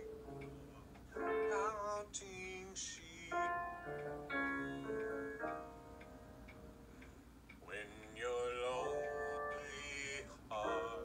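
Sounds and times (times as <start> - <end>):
piano chords: 0.0 - 7.0, 8.7 - 11.0
faint ticks: 0.0 - 11.0.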